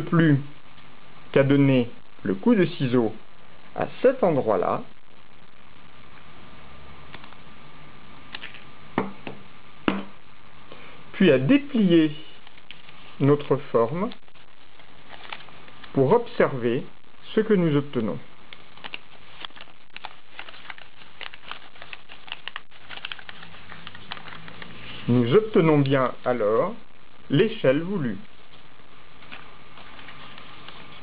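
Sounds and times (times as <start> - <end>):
paper crackling and rustling: 12.3 - 16.2, 18.4 - 24.8, 28.4 - 31.0
scissors snipping paper: 18.8 - 24.6.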